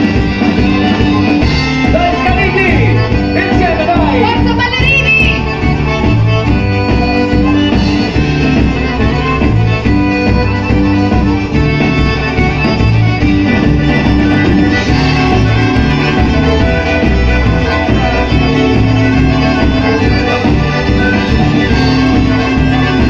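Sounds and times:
live band playing folk dance music: 0.0s - 23.0s
pulsing bass beat: 0.0s - 23.0s
sliding melody line: 0.0s - 23.0s.

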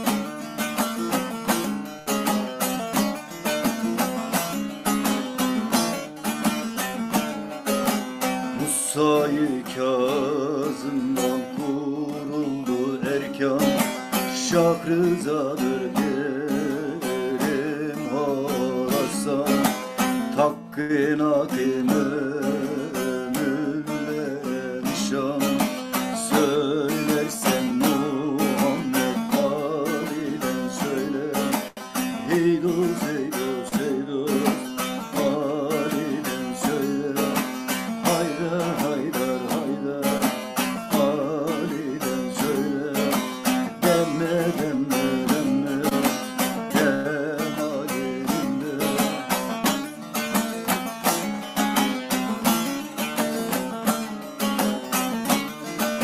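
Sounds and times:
plucked lute melody: 0.0s - 56.0s.

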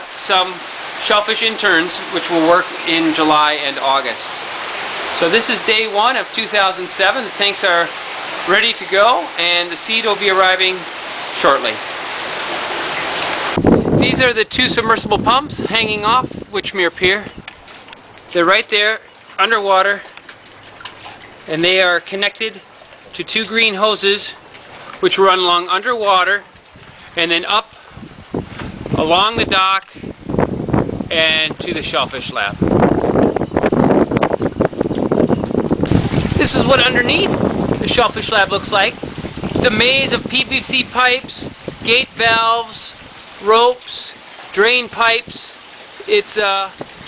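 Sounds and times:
water pouring and splashing into tanks: 0.0s - 47.0s
wind rumble on microphone: 13.0s - 17.7s, 26.5s - 27.2s, 27.8s - 43.4s, 46.7s - 47.0s.

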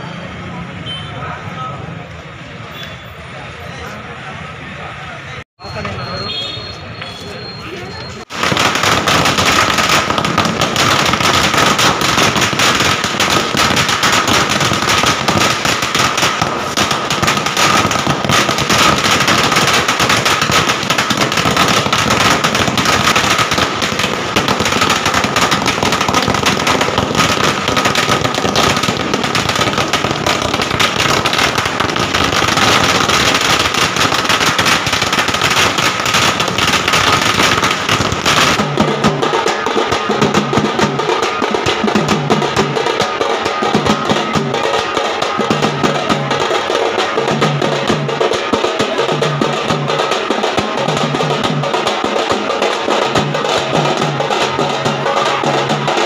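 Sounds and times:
firecrackers going off: 3.8s - 56.0s.

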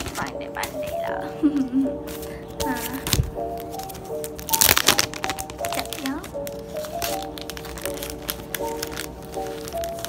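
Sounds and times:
background music with held notes: 0.0s - 10.0s
sticker sheets crackling rustle: 2.6s - 10.0s.

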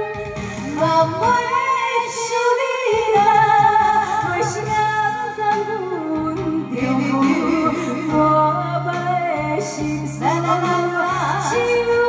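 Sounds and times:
backing track over speakers: 0.0s - 12.0s
woman singing a slow ballad: 0.0s - 12.0s.

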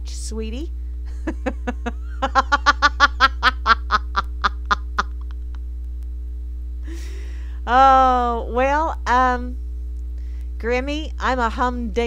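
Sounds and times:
low electrical hum: 0.0s - 12.0s
woman laughing: 1.1s - 5.6s.

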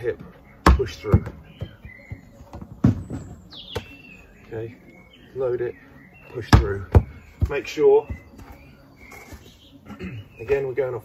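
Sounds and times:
bird chirp: 0.0s - 11.0s
ball thud on grass: 0.6s - 4.0s, 6.5s - 8.5s.

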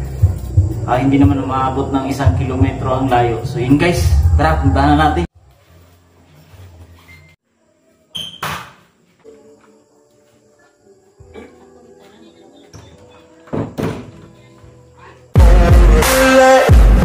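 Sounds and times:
faint background music: 0.0s - 15.6s
wooden door thumps and knocks: 12.8s - 14.3s.

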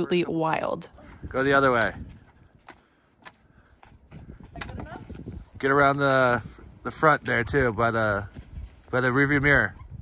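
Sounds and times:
snow crunching and scraping: 4.8s - 9.5s.

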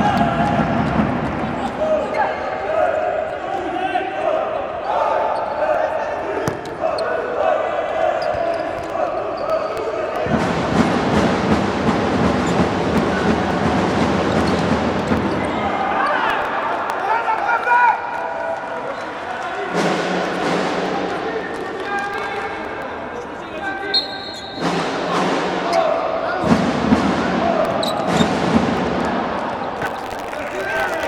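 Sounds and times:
people shouting in a hall: 0.0s - 11.1s, 14.9s - 31.0s
crowd noise: 0.0s - 31.0s
ball kicked and bouncing indoors: 14.3s - 15.5s.

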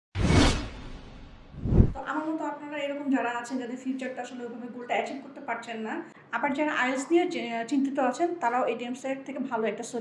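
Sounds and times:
whoosh sound effect: 0.2s - 2.0s.

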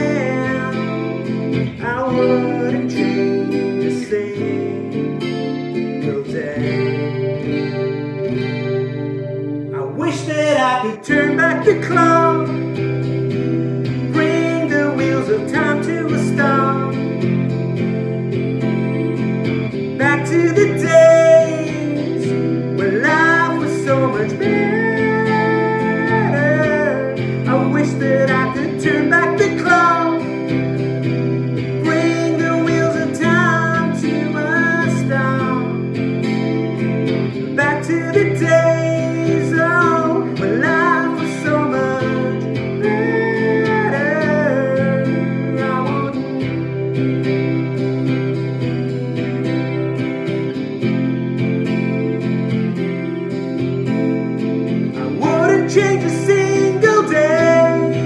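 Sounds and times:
man singing: 0.0s - 7.4s, 9.7s - 17.8s, 20.0s - 36.0s, 37.5s - 46.6s, 55.0s - 58.0s
acoustic guitar strumming chords: 0.0s - 58.0s.

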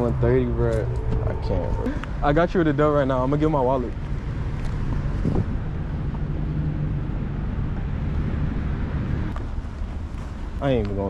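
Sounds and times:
traffic noise: 0.0s - 11.0s
wind buffeting microphone: 0.0s - 11.0s.

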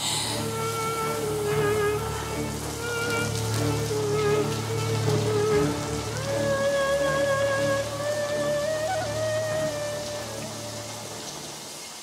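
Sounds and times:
drama score of sustained notes: 0.0s - 11.7s
steady hiss: 0.0s - 12.0s.

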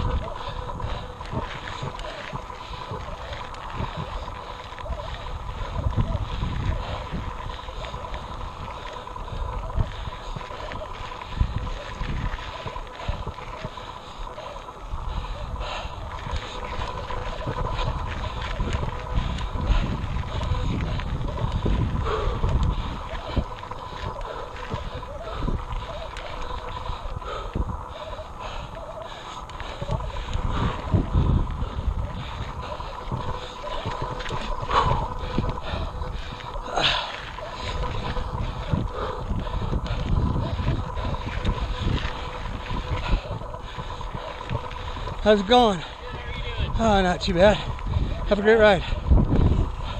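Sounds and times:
bike knocking and rattling over rocks: 0.0s - 49.9s
wind and tyres rumbling: 0.0s - 49.9s.

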